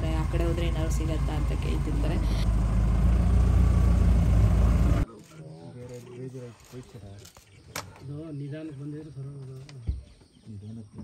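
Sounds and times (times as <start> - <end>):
engine low rumble: 0.0 - 5.1.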